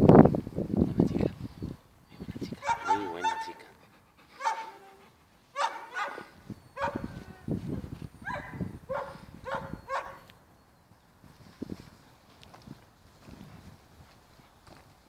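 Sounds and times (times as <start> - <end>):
dog whimpering yips: 2.6 - 3.6, 4.4 - 7.5, 8.2 - 10.2.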